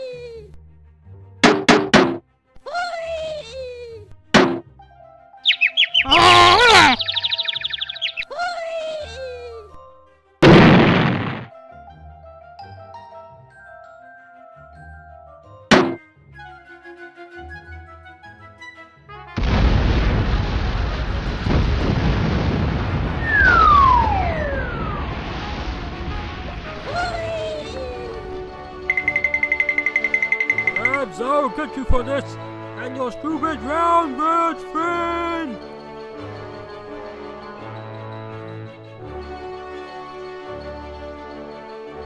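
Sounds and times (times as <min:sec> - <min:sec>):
cartoon hit: 0:04.4 - 0:04.6, 0:10.4 - 0:11.5, 0:15.7 - 0:16.0
falling bird chirps: 0:05.4 - 0:08.3, 0:28.9 - 0:31.0
fast chirping trill: 0:05.4 - 0:08.3, 0:28.9 - 0:31.1
cartoon squawk: 0:05.5 - 0:08.3
cartoon explosion with rumble: 0:10.4 - 0:11.5, 0:19.4 - 0:27.1.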